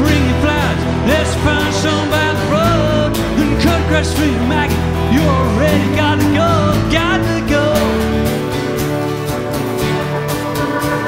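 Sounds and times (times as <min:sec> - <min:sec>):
person singing lead vocal: 0:00.0 - 0:08.2
drums: 0:00.0 - 0:11.0
guitars: 0:00.0 - 0:11.0
keyboards: 0:00.0 - 0:11.0.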